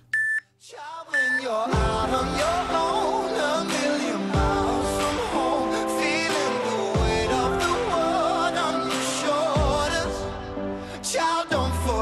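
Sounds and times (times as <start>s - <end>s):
electronic timer beeps: 0.0s - 0.5s, 1.2s - 1.5s
pop music with singing: 0.0s - 12.0s.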